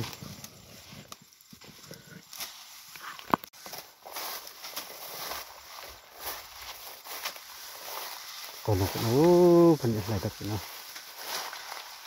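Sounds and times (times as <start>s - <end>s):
footsteps in dry grass: 0.0s - 12.0s.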